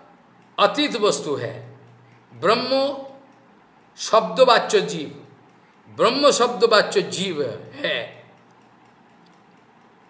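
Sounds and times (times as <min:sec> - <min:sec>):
faint room hiss: 0:00.0 - 0:10.0
man lecturing: 0:00.6 - 0:03.3, 0:04.0 - 0:08.4
faint ticks: 0:08.1 - 0:10.0.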